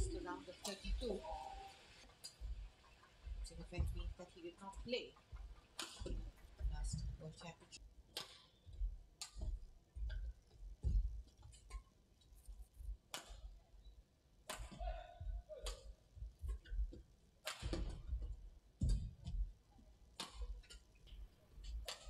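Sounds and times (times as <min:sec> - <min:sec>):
footsteps thudding on court: 0:02.3 - 0:07.5, 0:08.7 - 0:11.8, 0:14.6 - 0:19.5
racket striking shuttlecock: 0:04.7 - 0:07.1, 0:08.1 - 0:11.9, 0:13.1 - 0:13.6, 0:14.5 - 0:18.1, 0:20.2 - 0:22.0.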